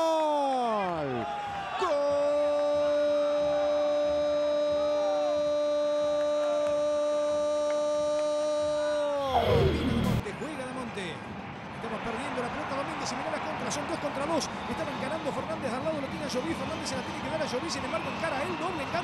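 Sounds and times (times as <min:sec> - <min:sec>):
stadium crowd noise: 0:00.0 - 0:19.0.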